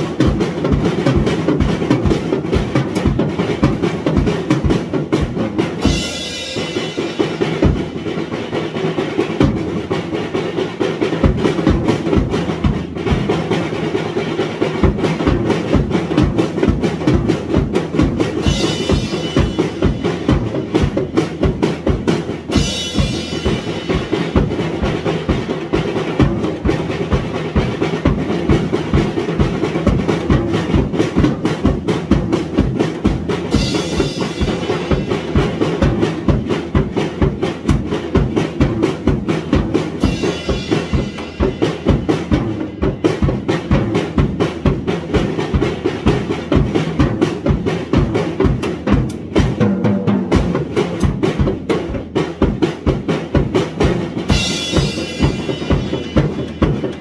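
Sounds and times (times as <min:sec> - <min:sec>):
drum and cymbal strikes: 0:00.0 - 0:57.0
heavy bass drum strokes: 0:00.0 - 0:57.0
cymbals crashing: 0:05.8 - 0:08.3, 0:18.4 - 0:20.9, 0:22.5 - 0:25.7, 0:33.5 - 0:35.6, 0:40.0 - 0:43.5, 0:54.3 - 0:57.0.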